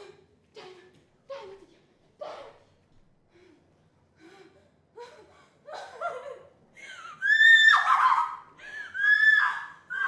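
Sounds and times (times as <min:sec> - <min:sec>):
woman shrieking: 0:07.2 - 0:10.0.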